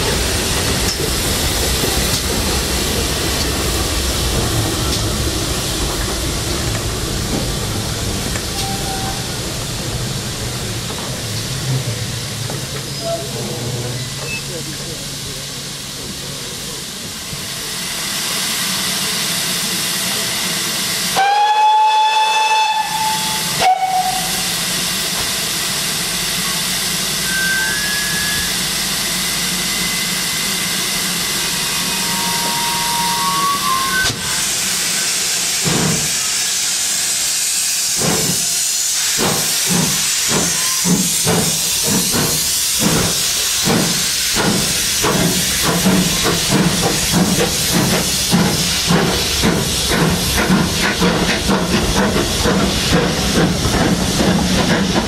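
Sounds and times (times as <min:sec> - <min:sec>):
steam hissing: 0:00.0 - 0:55.0
steam locomotive whistle: 0:21.1 - 0:24.6, 0:27.2 - 0:28.7, 0:31.6 - 0:34.4.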